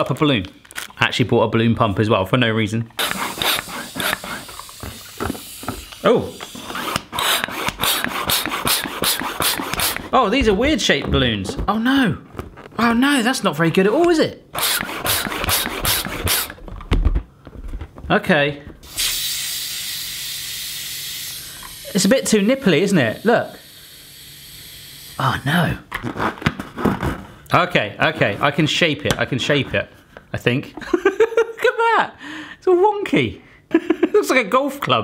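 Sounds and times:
hand pump hissing air: 3.0 - 10.2, 14.5 - 16.6, 18.8 - 25.6.

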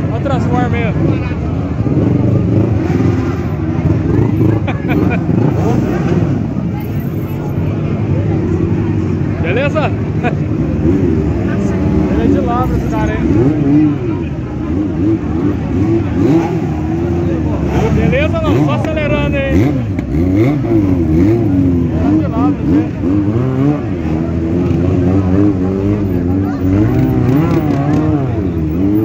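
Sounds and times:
crowd voices: 0.0 - 29.0
motorcycle engines revving: 0.0 - 29.0.

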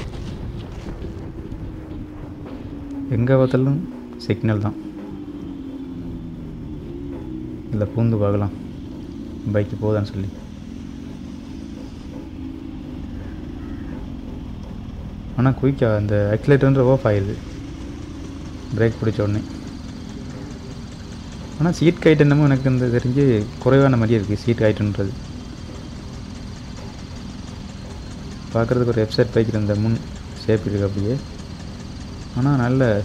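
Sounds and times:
faint high whine: 0.0 - 33.0
traffic rumble: 0.0 - 33.0
truck and car engines idling: 0.0 - 33.0.

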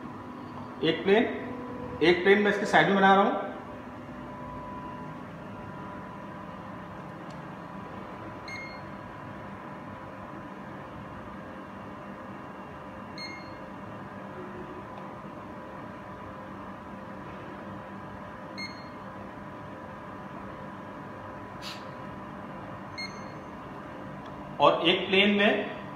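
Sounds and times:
steady machine hum: 0.0 - 25.9
short high beeps: 8.4 - 8.9, 13.2 - 13.6, 18.6 - 19.1, 22.9 - 23.5.

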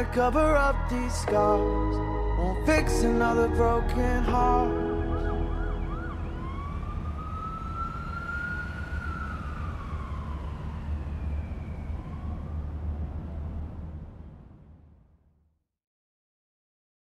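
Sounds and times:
siren-like electronic wail: 0.0 - 14.4
steady low rumble: 0.0 - 15.3.

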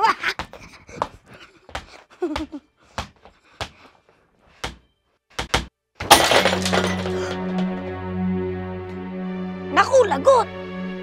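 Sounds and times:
ceramic mug shattering: 6.0 - 7.8.

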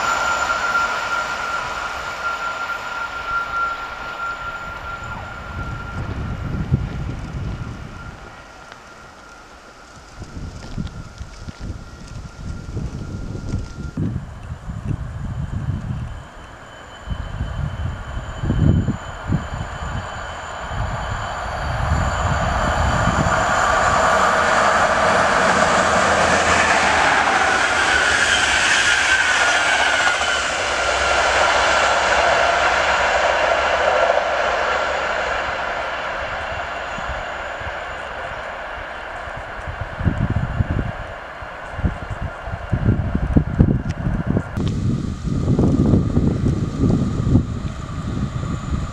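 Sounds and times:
passenger train passing at speed: 0.0 - 48.9
wind buffeting microphone: 4.5 - 9.1, 9.8 - 48.9.

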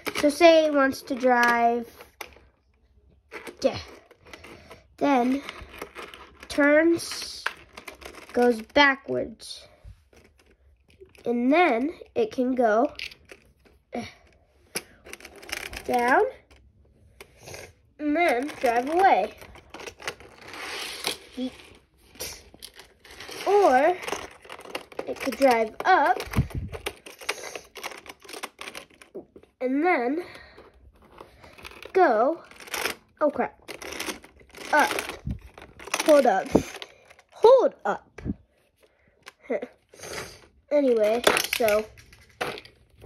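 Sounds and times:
toy car on plastic track: 14.7 - 16.6, 17.2 - 29.1, 31.5 - 37.4, 40.0 - 42.8.

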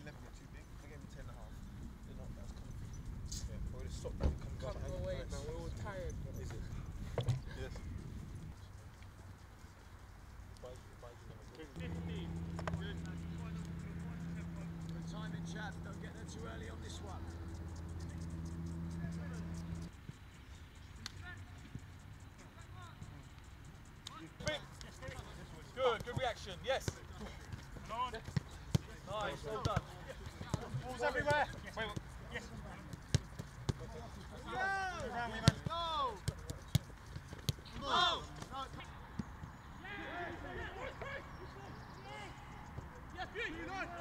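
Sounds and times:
low mechanical hum: 11.7 - 29.4
distant shouts: 11.8 - 20.0, 34.4 - 36.3, 37.6 - 44.0.

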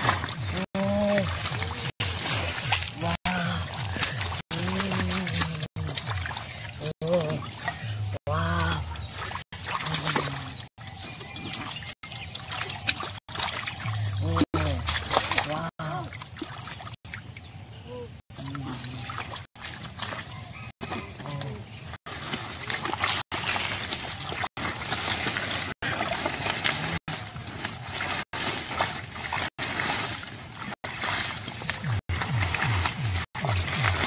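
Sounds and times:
rustling water plants: 0.0 - 17.0, 18.4 - 34.0
splashing muddy water: 0.0 - 17.5, 18.3 - 34.0
person speaking: 2.9 - 6.1.

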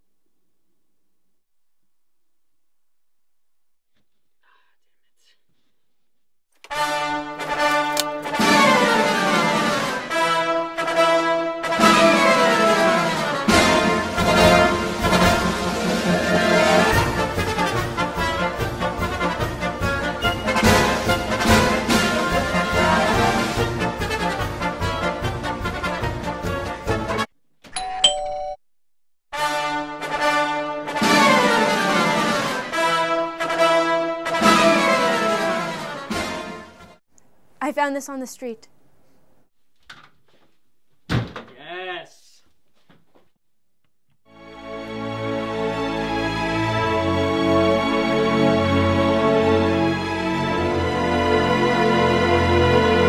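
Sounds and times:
faint whispering: 4.0 - 6.1
background music: 6.6 - 27.3, 29.4 - 37.0, 44.3 - 53.0
two-note doorbell chime: 27.8 - 28.6.

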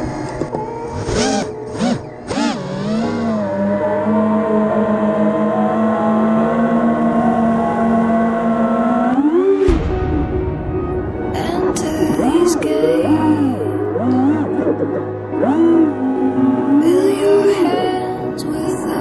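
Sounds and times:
drone propellers whining: 0.0 - 19.0.

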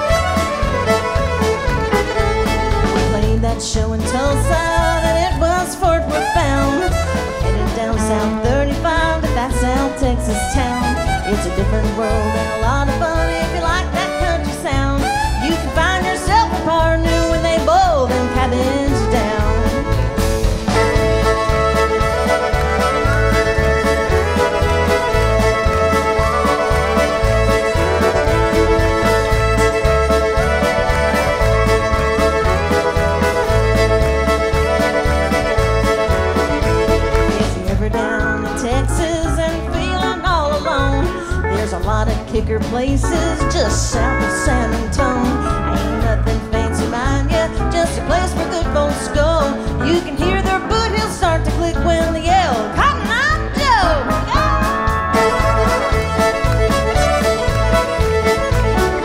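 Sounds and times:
country band playing fiddle tune: 0.0 - 59.0.

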